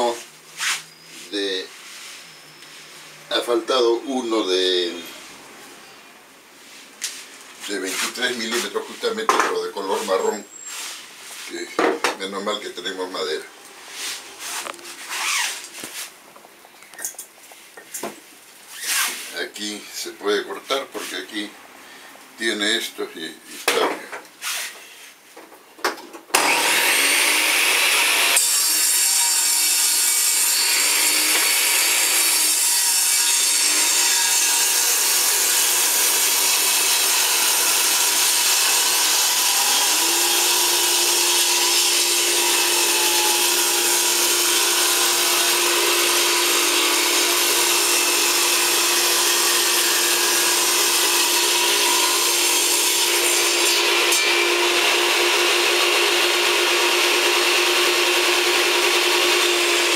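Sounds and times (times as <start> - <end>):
table saw ripping wood: 14.0 - 16.1, 18.7 - 19.4, 26.3 - 59.9.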